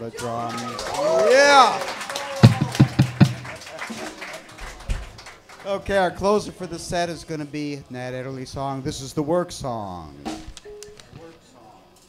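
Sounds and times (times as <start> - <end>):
drum fill on low drums: 2.4 - 3.6.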